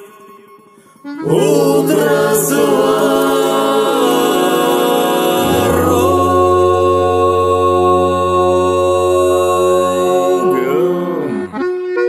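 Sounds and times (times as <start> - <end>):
voices singing a long chord: 1.0 - 12.0
wavering pitch glide: 5.4 - 9.6
low steady drone: 5.4 - 10.8.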